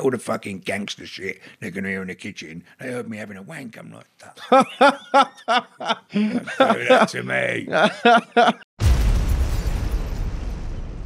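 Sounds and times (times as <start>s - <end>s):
explosion boom: 8.8s - 11.0s.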